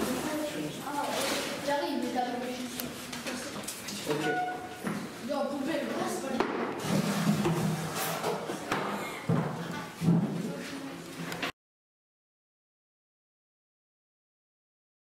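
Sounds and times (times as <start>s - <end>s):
people talking indistinctly: 0.0s - 6.8s.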